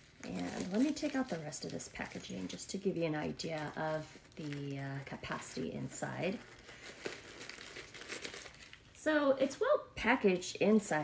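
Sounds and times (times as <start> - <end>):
tissue paper crinkling: 0.0 - 9.0.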